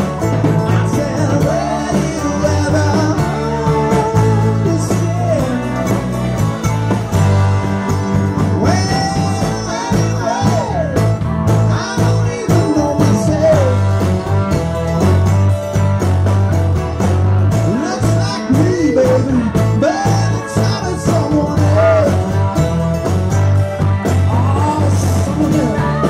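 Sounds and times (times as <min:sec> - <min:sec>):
live rock band playing: 0:00.0 - 0:26.0
pulsing bass line: 0:00.0 - 0:26.0
man singing: 0:00.3 - 0:06.3, 0:08.4 - 0:14.2, 0:17.6 - 0:22.7, 0:24.1 - 0:26.0.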